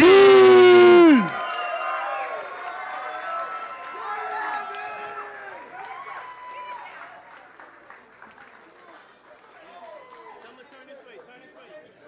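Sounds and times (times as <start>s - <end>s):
crowd cheering and shouting: 0.0s - 6.9s.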